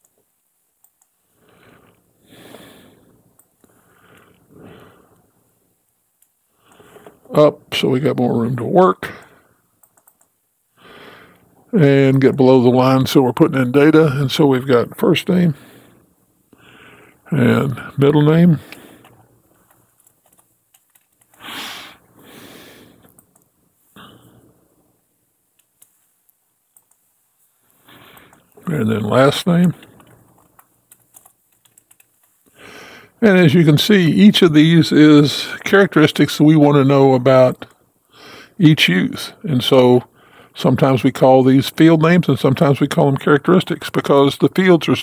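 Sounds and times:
faint clicks: 0.0 - 1.2, 9.2 - 10.4, 23.0 - 23.5, 25.5 - 27.1, 27.7 - 28.7, 29.6 - 32.6
soft hiss: 0.0 - 45.0
man breathing in: 1.3 - 5.3, 6.6 - 7.2, 10.8 - 11.5, 15.6 - 17.2, 21.4 - 23.1, 32.5 - 33.2
man speaking: 7.3 - 9.4, 11.7 - 15.7, 17.2 - 18.8, 28.6 - 30.0, 33.2 - 37.7, 38.6 - 45.0
keyboard typing: 9.2 - 10.3, 19.0 - 21.4, 26.7 - 27.0, 28.0 - 28.7, 29.6 - 32.4.

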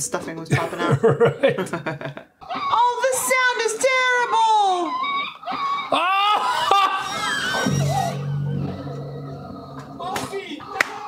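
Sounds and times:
high falling cries: 2.4 - 10.8
low droning music: 7.7 - 10.1.

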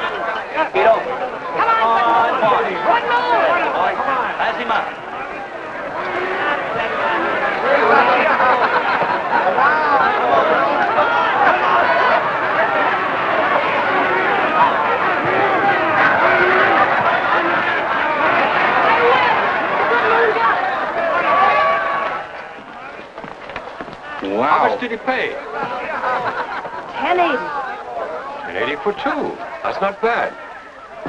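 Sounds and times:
crowd cheering and shouting: 0.0 - 31.0.

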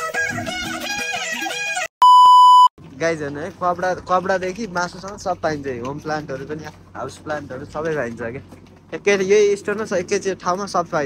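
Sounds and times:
electronic beep tone: 2.0 - 2.7.

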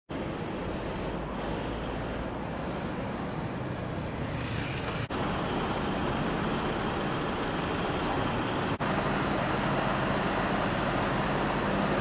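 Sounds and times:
fire engines idling rumble: 0.1 - 12.0
street noise: 0.1 - 12.0.

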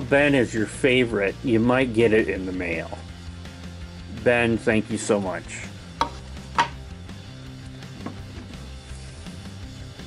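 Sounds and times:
background guitar music: 0.0 - 10.0
wrench knocking on wooden board: 6.0 - 6.8.

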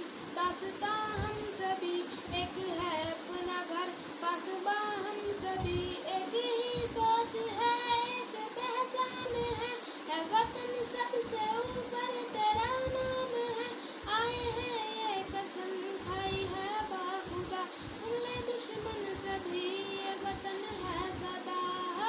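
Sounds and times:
boy singing: 0.4 - 22.0.

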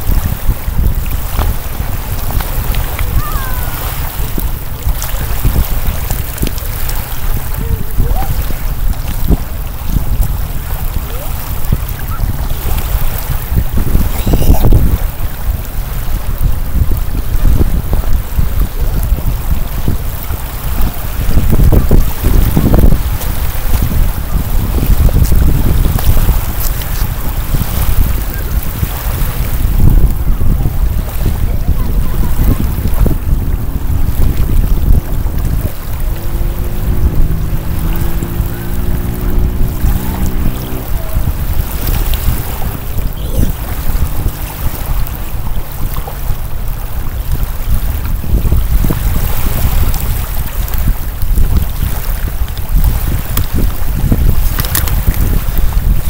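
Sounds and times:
small waves lapping shore: 0.0 - 56.0
wind buffeting microphone: 0.0 - 56.0.

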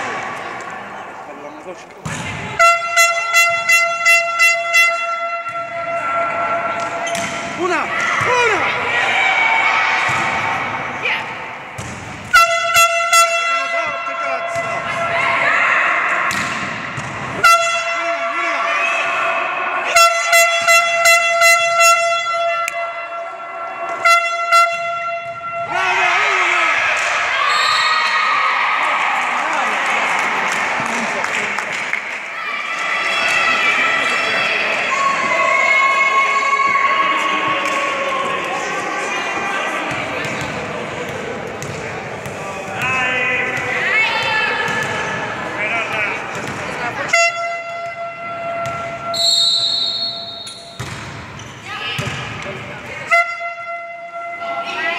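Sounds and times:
crowd voices and shouting: 0.0 - 54.9
air horn blasts: 2.5 - 6.4, 12.3 - 14.1, 17.4 - 18.3, 19.9 - 23.3, 23.9 - 25.7, 47.1 - 50.8, 53.1 - 54.4.

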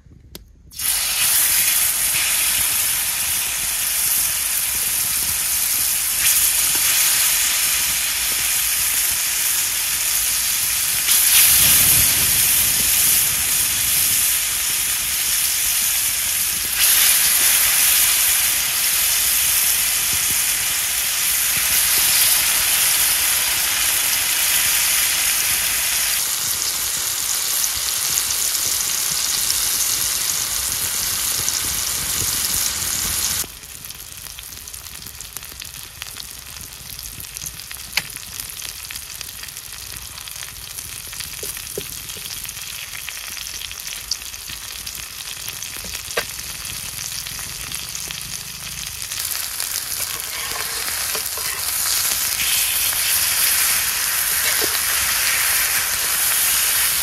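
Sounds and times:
fish sizzling in hot oil: 0.7 - 57.0.

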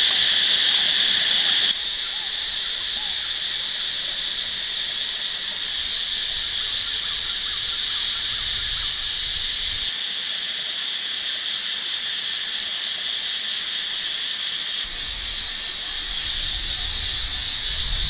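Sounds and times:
shrill insect chorus: 0.0 - 18.0.

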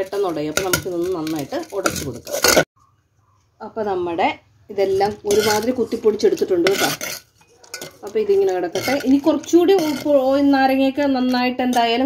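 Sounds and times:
metal spoon stirring in steel pot: 0.0 - 2.7, 4.8 - 12.0.

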